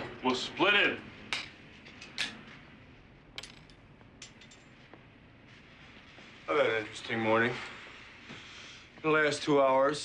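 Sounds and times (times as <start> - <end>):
light metallic clinks and taps: 3.4 - 4.9.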